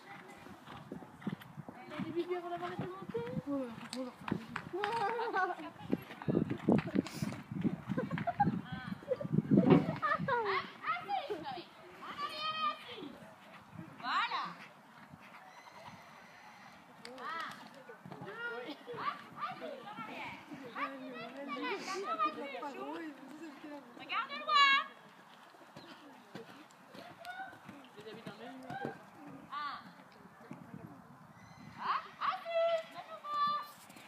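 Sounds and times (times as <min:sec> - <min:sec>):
muffled hoofbeats on sand: 0:00.0 - 0:16.2, 0:17.6 - 0:30.9, 0:32.4 - 0:34.0.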